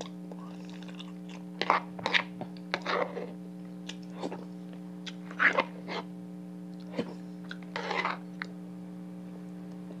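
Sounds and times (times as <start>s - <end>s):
wet chewing sounds: 0.0s - 6.0s.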